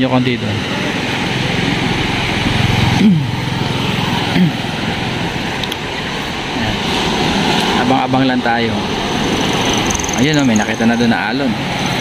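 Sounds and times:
surf breaking on a beach: 0.0 - 10.1
distant voices: 0.0 - 12.0
low engine-like hum: 0.0 - 12.0.

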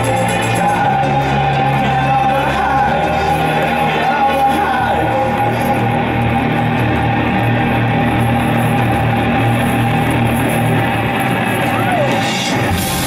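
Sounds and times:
keyboard-driven band music: 0.0 - 8.7, 9.4 - 13.0.

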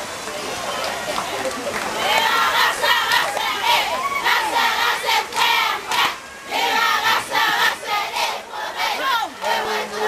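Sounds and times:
women chanting in unison: 2.0 - 10.0.

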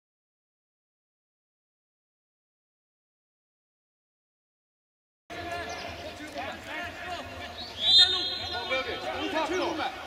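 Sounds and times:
players calling and shouting: 5.3 - 10.0.

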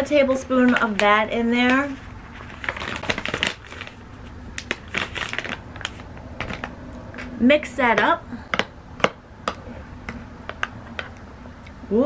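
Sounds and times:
plastic pouch crinkling: 0.6 - 6.8.

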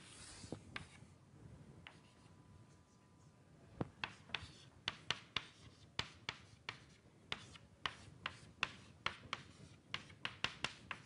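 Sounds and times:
chalk tapping and scraping on blackboard: 0.0 - 1.1, 1.8 - 2.3, 3.9 - 11.0.

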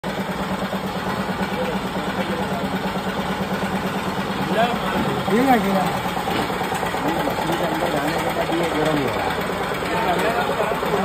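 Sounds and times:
grain processing machine humming: 0.0 - 11.0.

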